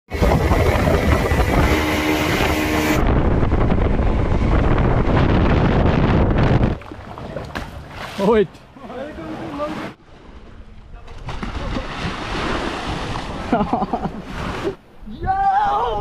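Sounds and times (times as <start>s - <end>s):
wind on microphone: 0.1s - 7.9s
motorboat engine: 0.1s - 9.9s.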